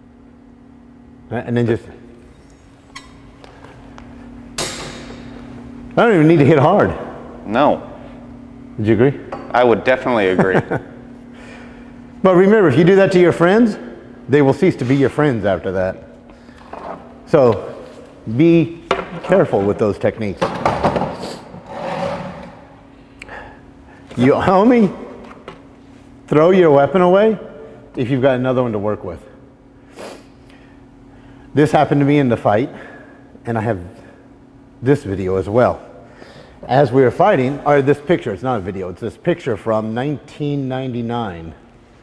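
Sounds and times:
steady low hum: 0.0s - 42.0s
chair legs scraping on concrete: 21.5s - 22.6s.

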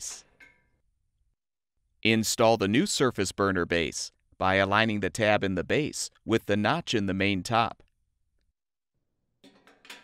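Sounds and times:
metal burner clinking on stovetop: 9.4s - 10.0s.

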